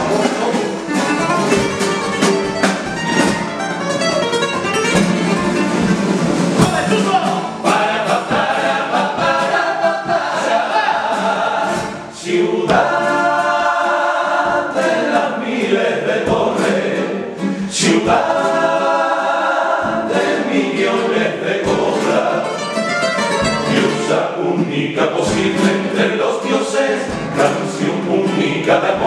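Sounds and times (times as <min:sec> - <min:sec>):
male chorus singing in harmony: 0:06.6 - 0:29.0.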